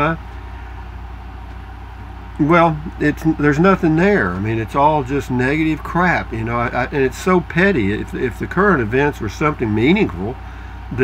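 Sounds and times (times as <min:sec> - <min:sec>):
low pulsing machine hum: 0:00.0 - 0:11.0.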